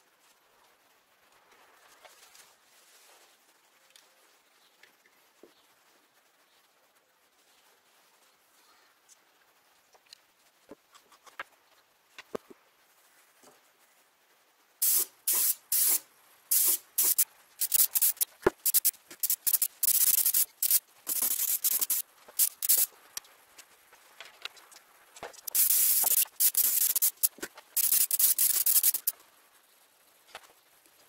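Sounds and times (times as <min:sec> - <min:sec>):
airbrush spraying hiss: 0:14.8 - 0:23.0, 0:25.4 - 0:29.2.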